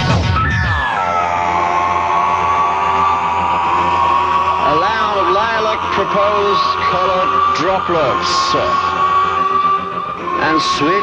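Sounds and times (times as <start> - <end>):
low drone: 0.0 - 11.0
sustained synth chord: 0.0 - 11.0
man half-spoken vocal: 4.6 - 9.0, 10.3 - 11.0.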